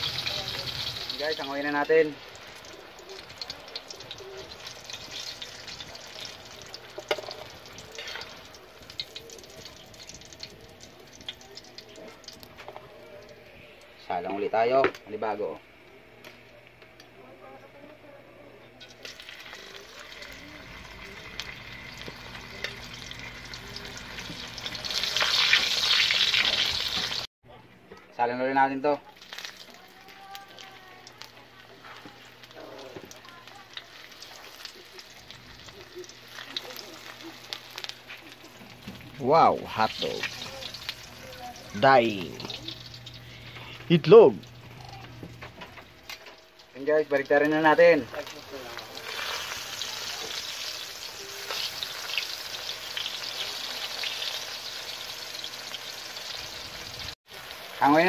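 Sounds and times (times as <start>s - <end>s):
fish sizzling in hot oil: 0.0s - 13.4s, 18.8s - 27.3s, 29.1s - 58.0s.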